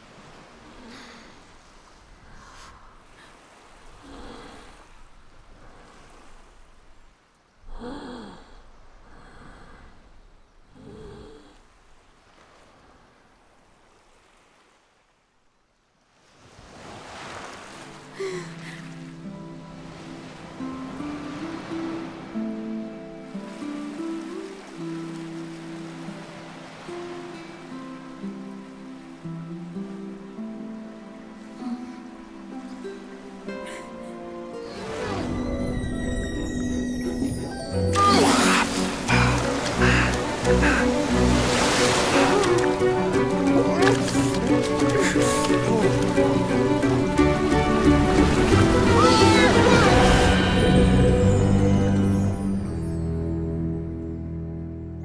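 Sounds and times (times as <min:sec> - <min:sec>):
soft surf: 0:00.0 - 0:15.3, 0:16.0 - 0:52.9
gentle orchestral music: 0:17.7 - 0:55.0
wave washing in: 0:34.5 - 0:52.2
cartoon character sighing and gasping: 0:37.4 - 0:40.9, 0:48.9 - 0:50.2.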